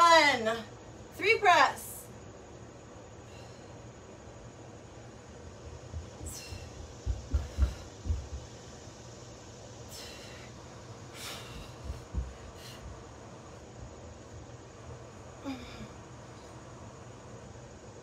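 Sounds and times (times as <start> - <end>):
low thumps: 5.8 - 8.6.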